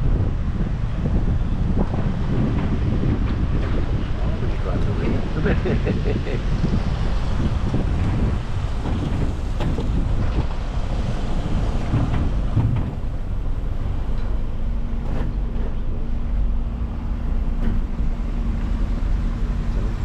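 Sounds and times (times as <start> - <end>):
engine running at low speed: 0.0 - 20.0
steady low hum: 0.0 - 20.0.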